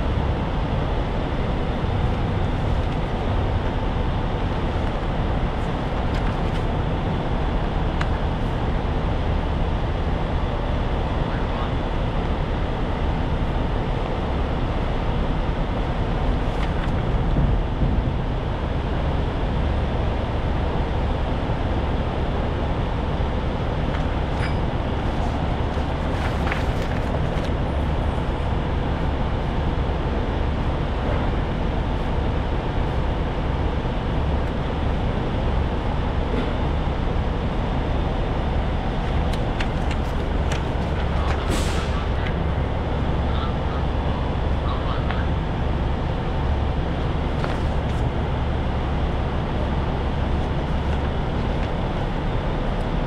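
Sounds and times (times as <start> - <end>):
large engine idling: 0.0 - 53.0.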